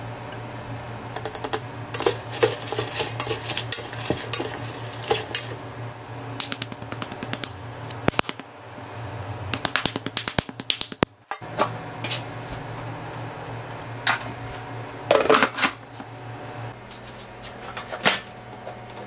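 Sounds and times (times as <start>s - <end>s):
steady low hum: 0.0s - 19.0s
spoon clinking against metal pot: 1.2s - 2.5s.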